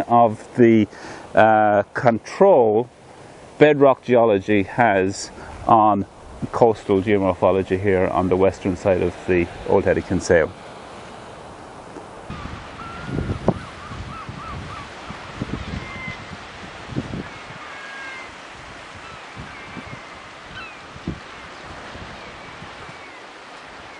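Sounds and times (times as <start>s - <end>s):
coastal surf: 0.0s - 23.9s
wind noise: 5.3s - 10.2s, 12.3s - 23.8s
seabird calls: 12.3s - 23.9s.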